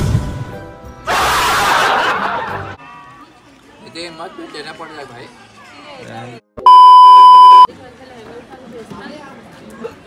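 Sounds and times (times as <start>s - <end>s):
high-pitched censor beep: 6.7s - 7.7s.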